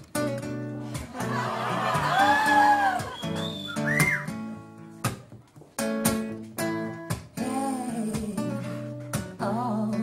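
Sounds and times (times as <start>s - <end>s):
person whistling: 2.7s - 4.4s.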